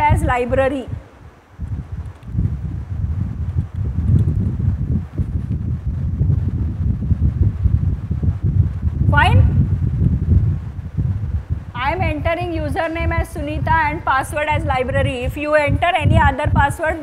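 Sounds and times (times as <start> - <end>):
low rumbling on microphone: 0.0 - 17.0.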